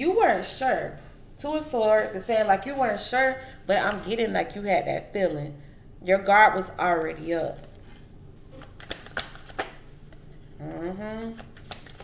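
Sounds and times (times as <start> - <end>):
cards flicking and snapping: 8.6 - 9.8, 11.4 - 12.0.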